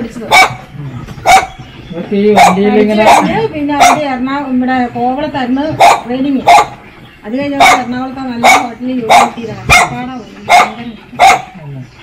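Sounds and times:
woman talking: 0:00.0 - 0:00.8, 0:01.9 - 0:11.2
dog barking: 0:00.3 - 0:01.6, 0:02.4 - 0:04.2, 0:05.7 - 0:06.8, 0:07.6 - 0:11.6.

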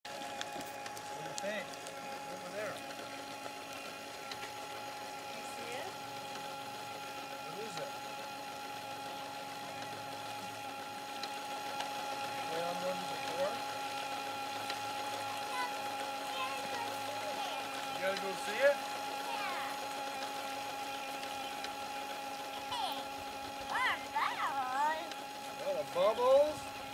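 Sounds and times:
steady multi-tone hum: 0:00.1 - 0:26.9.

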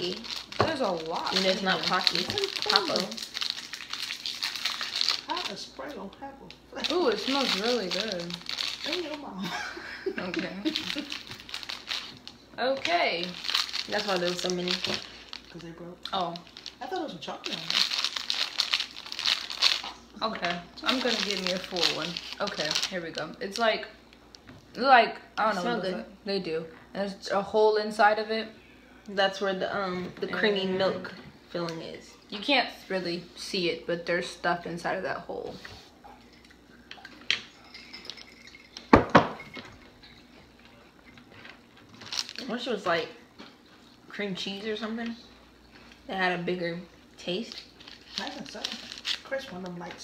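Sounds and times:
plastic wrapper crinkling: 0:00.0 - 0:09.5, 0:10.1 - 0:24.4, 0:40.0 - 0:43.0, 0:46.9 - 0:50.0.

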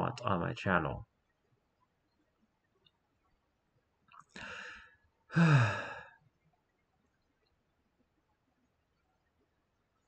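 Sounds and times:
person sighing: 0:04.4 - 0:06.2.

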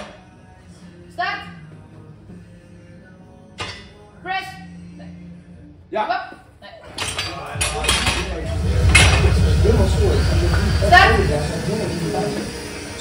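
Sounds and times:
low hum: 0:07.5 - 0:13.0.

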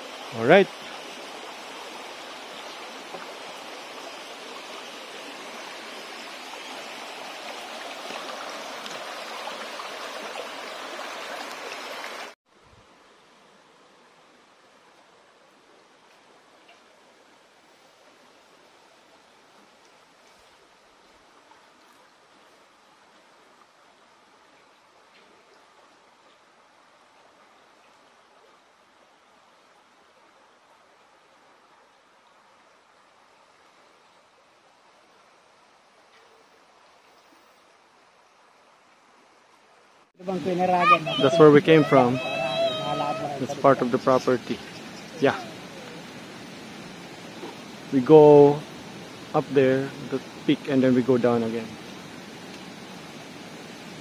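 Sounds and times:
creek running over stones: 0:00.0 - 0:54.0
faint steady hiss: 0:00.0 - 0:54.0.

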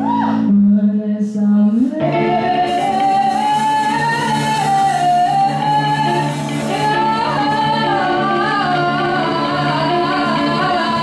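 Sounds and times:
bass guitar: 0:00.0 - 0:11.0
electric guitar: 0:00.0 - 0:11.0
woman singing: 0:00.0 - 0:11.0.

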